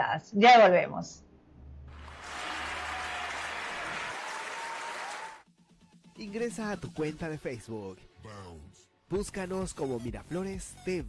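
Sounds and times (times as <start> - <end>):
recorded applause: 1.8 - 5.5.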